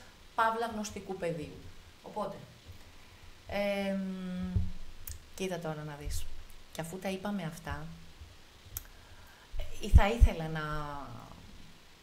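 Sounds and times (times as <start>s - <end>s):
woman talking: 0.4s - 2.6s, 3.5s - 8.0s, 9.6s - 11.6s.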